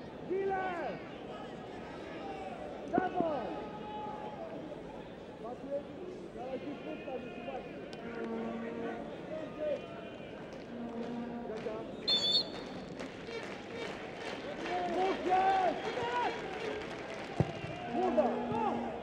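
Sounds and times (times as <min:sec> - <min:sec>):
stadium crowd chanting: 0:09.9 - 0:19.0
referee whistle blast: 0:12.1 - 0:12.6.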